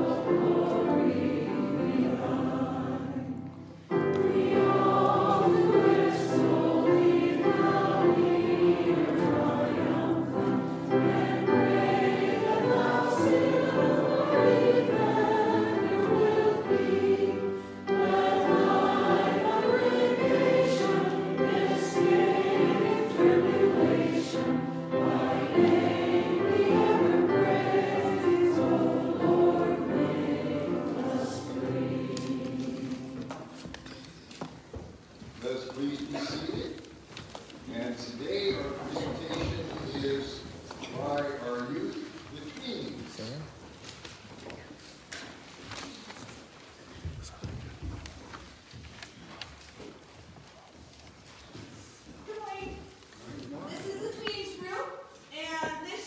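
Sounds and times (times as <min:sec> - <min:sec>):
congregation singing a hymn: 0:00.0 - 0:34.6, 0:35.4 - 0:42.4.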